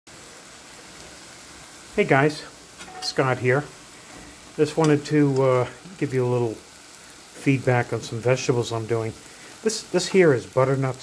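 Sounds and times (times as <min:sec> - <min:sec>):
vegetables sizzling in a frying pan: 0:00.1 - 0:11.0.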